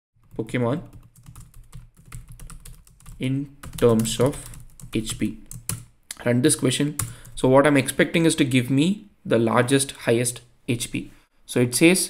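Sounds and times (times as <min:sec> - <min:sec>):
typing on computer keyboard: 0:00.2 - 0:05.9, 0:07.0 - 0:07.4.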